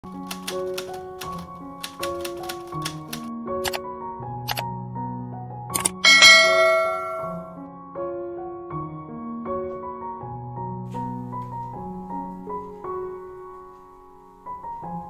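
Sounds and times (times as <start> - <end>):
quick sharp clicks: 5.8 - 6.0
bright bell-like ding: 6.0 - 7.6
soft sustained melodic jingle: 6.0 - 7.6.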